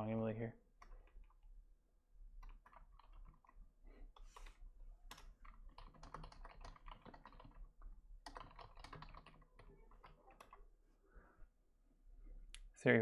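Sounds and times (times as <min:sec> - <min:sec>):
faint typing on computer keyboard: 0:00.7 - 0:01.5, 0:02.2 - 0:10.8.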